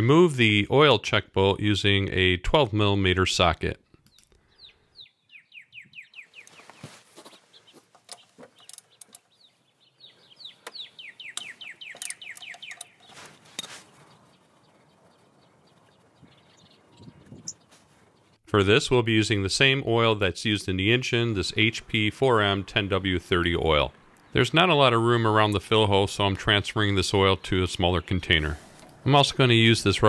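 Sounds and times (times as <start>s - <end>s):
bird chirping: 3.8s - 30.0s
socket wrench clicks: 11.4s - 13.0s.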